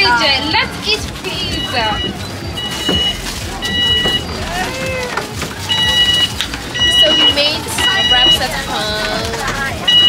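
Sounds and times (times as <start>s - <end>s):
electronic beep: 1.4s - 4.8s, 5.6s - 8.9s, 9.8s - 10.0s.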